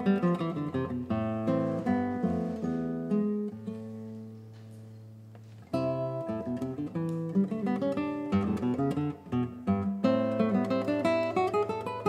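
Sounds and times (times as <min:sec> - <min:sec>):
fingerstyle classical guitar: 0:00.0 - 0:12.0.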